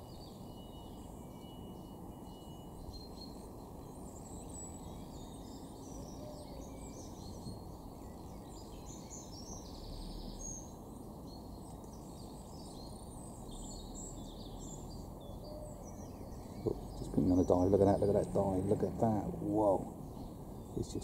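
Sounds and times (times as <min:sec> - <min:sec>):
small birds chirping: 0:00.0 - 0:21.0
low background rumble: 0:07.0 - 0:21.0.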